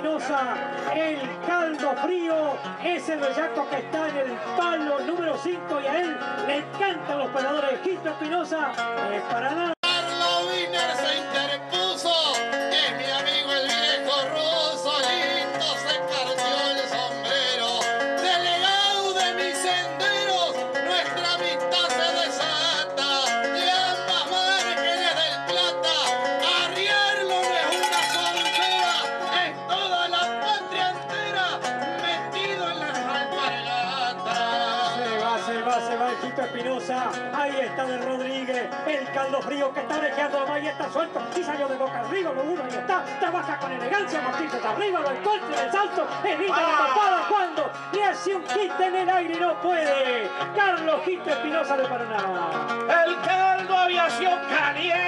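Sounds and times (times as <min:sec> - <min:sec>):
acoustic guitars strummed and picked: 0:00.0 - 0:55.0
man singing into a microphone: 0:00.0 - 0:55.0.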